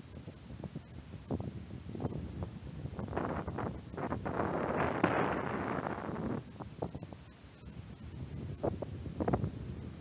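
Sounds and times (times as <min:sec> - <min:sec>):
snow hissing and scraping: 0:02.0 - 0:06.9.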